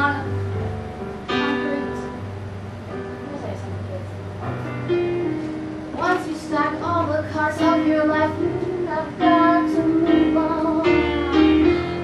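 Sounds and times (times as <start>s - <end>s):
low instrumental accompaniment: 0.0s - 12.0s
woman singing: 6.0s - 12.0s.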